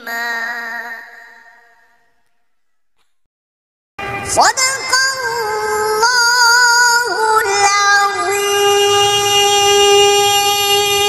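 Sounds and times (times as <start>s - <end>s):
person chanting a recitation: 0.0s - 2.0s, 4.2s - 11.0s.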